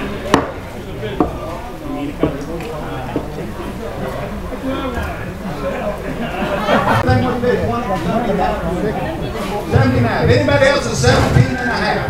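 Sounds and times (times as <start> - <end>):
murmur of crowd voices: 0.0 - 12.0.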